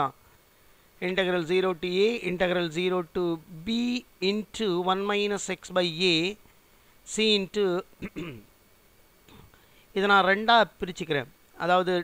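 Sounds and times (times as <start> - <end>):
man speaking: 1.0 - 6.4, 7.1 - 8.2, 10.0 - 12.0.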